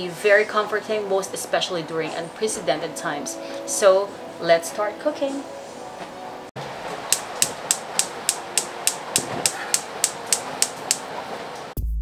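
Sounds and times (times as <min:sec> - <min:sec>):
gas hissing: 0:06.8 - 0:11.7
stove igniter clicking: 0:07.1 - 0:11.1
background music with low beat: 0:11.8 - 0:12.0.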